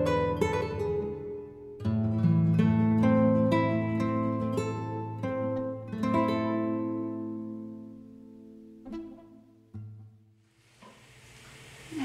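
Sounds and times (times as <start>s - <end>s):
plucked guitar note: 0.0s - 10.1s
faint steady hiss: 10.3s - 12.0s.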